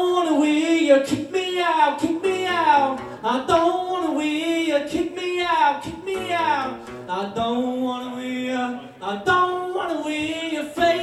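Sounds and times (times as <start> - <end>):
man singing: 0.0 - 11.0
strummed acoustic guitar: 0.0 - 11.0.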